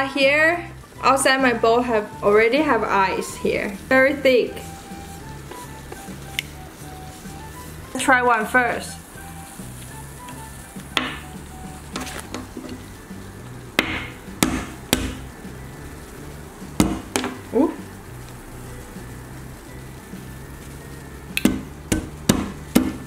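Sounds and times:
quiet background music with beat: 0:00.0 - 0:23.0.

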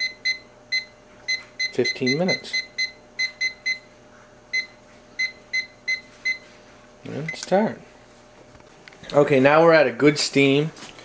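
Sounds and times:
kitchen timer beeps: 0:00.0 - 0:03.9, 0:04.5 - 0:06.5.

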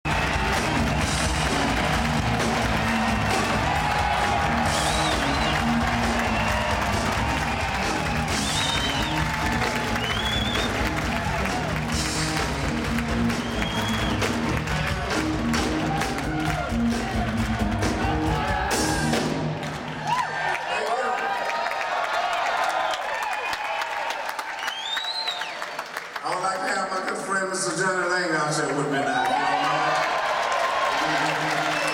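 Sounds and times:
drum kit: 0:00.0 - 0:20.0.

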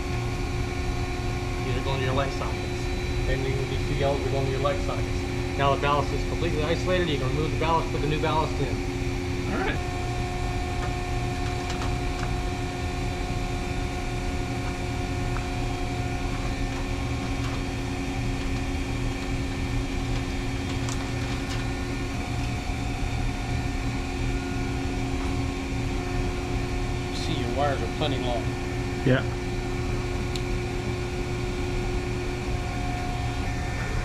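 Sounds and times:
machinery humming: 0:00.0 - 0:34.0.

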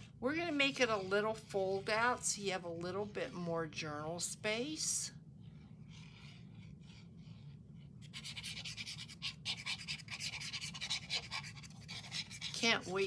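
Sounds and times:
glue bottle tip scratching paper: 0:05.9 - 0:13.0.

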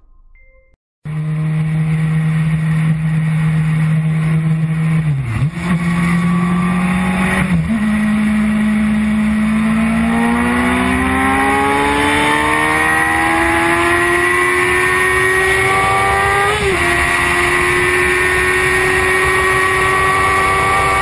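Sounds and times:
motorcycle engine at speed: 0:01.1 - 0:21.0.

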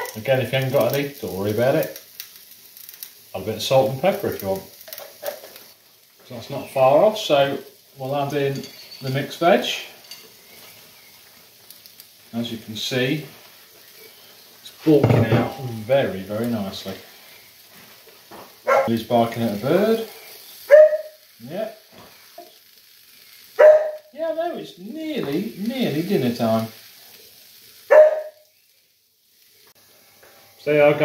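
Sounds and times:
sauce sizzling in a frying pan: 0:00.0 - 0:31.0
dog barking: 0:18.6 - 0:18.9, 0:20.7 - 0:21.2, 0:23.6 - 0:24.1, 0:27.9 - 0:28.4.

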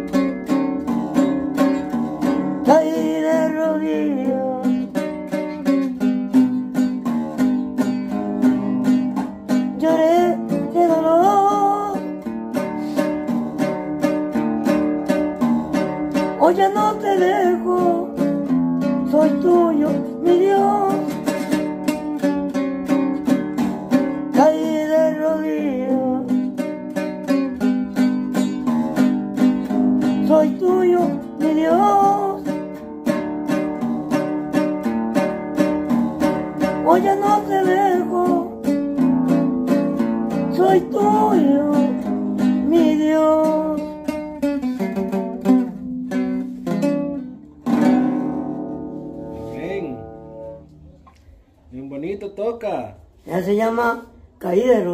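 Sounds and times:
acoustic guitar strumming: 0:00.0 - 0:51.4
man singing: 0:02.6 - 0:05.0, 0:09.7 - 0:12.0, 0:16.4 - 0:18.2, 0:19.0 - 0:21.3, 0:24.3 - 0:26.4, 0:30.2 - 0:32.6, 0:36.8 - 0:38.6, 0:40.5 - 0:43.9.

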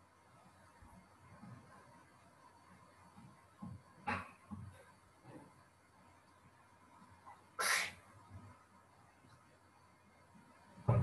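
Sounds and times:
short burst of breathy noise: 0:07.6 - 0:08.0.

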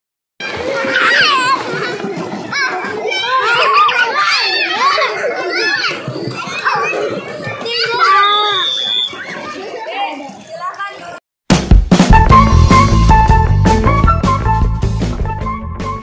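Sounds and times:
children shouting and chattering: 0:00.4 - 0:11.2
water splashing: 0:00.4 - 0:11.2.

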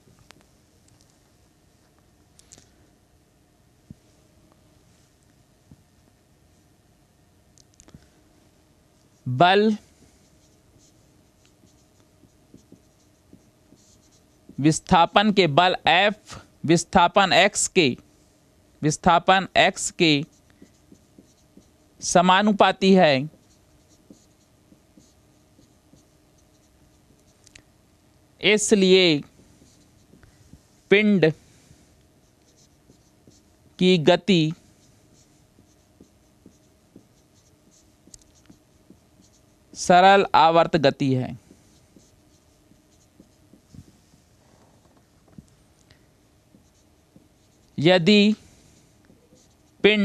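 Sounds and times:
marker scratching on whiteboard: 0:09.1 - 0:15.2, 0:19.0 - 0:27.4, 0:28.5 - 0:30.7, 0:32.1 - 0:40.1, 0:41.1 - 0:45.4, 0:46.4 - 0:49.9.

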